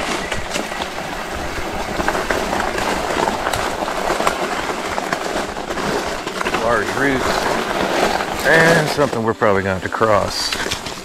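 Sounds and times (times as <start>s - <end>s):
bike knocking and rattling: 0.0s - 11.0s
tyres rolling on dirt: 0.0s - 11.0s.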